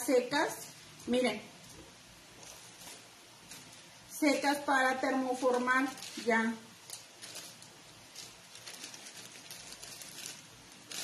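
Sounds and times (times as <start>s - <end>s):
plastic bag rustling: 1.6s - 11.0s.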